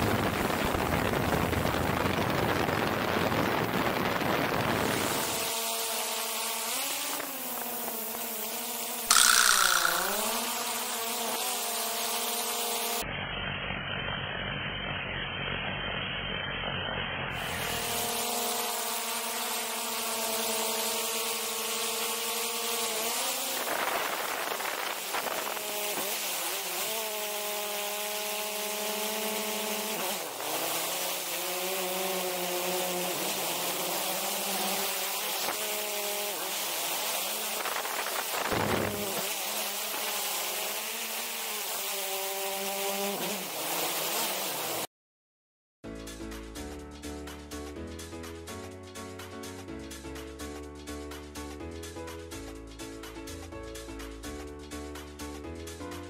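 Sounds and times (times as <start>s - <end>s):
drone propellers whining buzz: 0.1s - 44.8s
steady rushing hiss: 18.1s - 44.9s.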